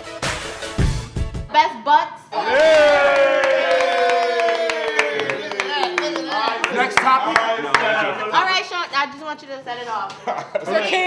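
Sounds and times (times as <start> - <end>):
group cheering: 2.3 - 8.6
long falling shout: 2.4 - 6.1
hand claps: 2.6 - 8.0.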